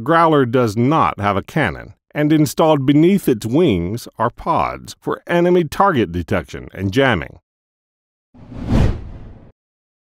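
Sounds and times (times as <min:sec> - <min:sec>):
whoosh sound effect: 0:08.4 - 0:09.5.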